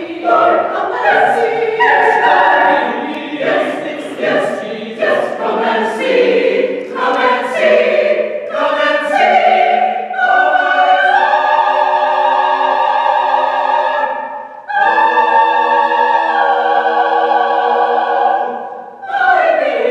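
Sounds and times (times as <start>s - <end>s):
mixed choir singing: 0.0s - 19.9s.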